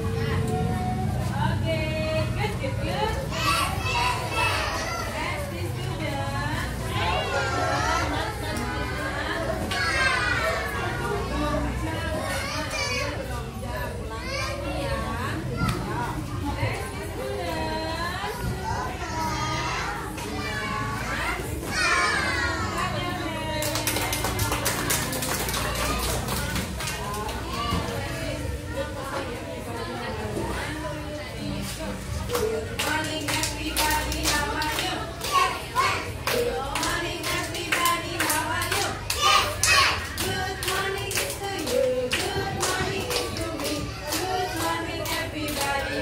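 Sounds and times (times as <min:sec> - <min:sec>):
adult voices: 0:00.0 - 0:46.0
children chattering and calling out: 0:00.0 - 0:46.0
hands clapping in rhythm: 0:23.6 - 0:27.4, 0:32.3 - 0:46.0.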